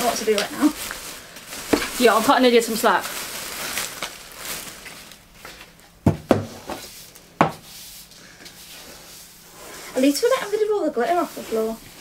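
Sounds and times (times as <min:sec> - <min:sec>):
plastic bin bag rustling: 0:00.0 - 0:07.2, 0:08.7 - 0:12.0.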